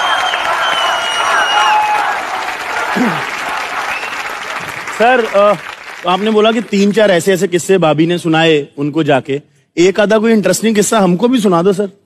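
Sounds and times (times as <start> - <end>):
studio audience applauding: 0.0 - 7.4.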